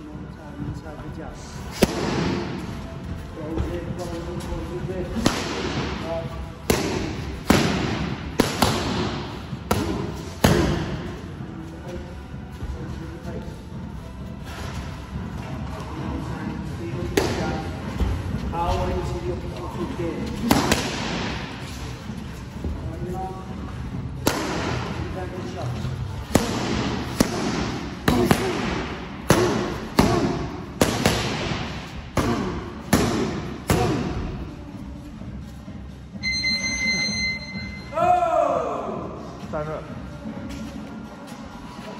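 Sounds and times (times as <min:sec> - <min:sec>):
steady beep: 0:36.2 - 0:38.0.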